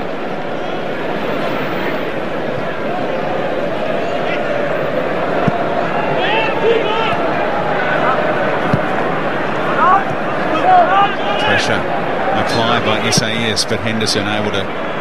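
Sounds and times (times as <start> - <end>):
stadium crowd voices: 0.0 - 15.0.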